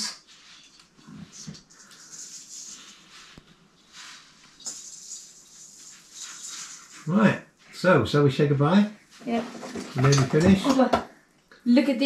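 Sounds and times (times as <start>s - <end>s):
artificial tree branches rustling: 0.2s - 7.7s.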